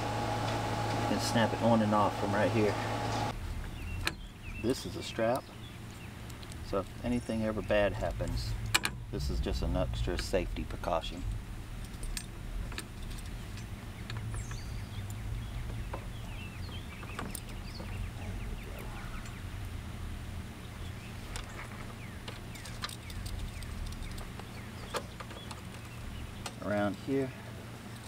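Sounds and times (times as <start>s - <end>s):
low background rumble: 0.0s - 28.0s
strap clip clicks and rattles: 11.8s - 17.9s, 21.3s - 26.6s
faint bird chirps: 13.4s - 19.6s.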